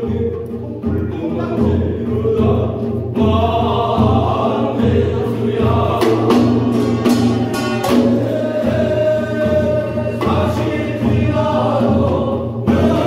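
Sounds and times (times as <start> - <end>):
handheld drums beating: 0.0 - 13.0
sharp strikes: 6.0 - 8.7.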